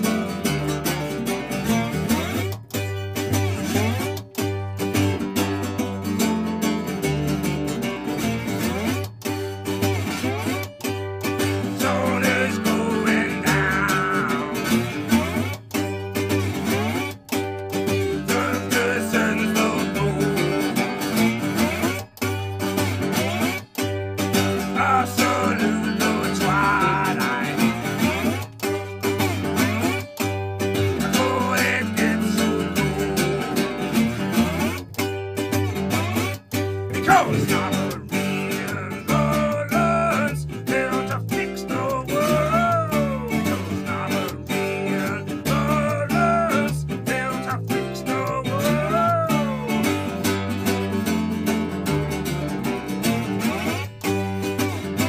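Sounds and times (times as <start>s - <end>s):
strummed slide guitar blues: 0.0s - 55.0s
walking bass line: 0.0s - 55.0s.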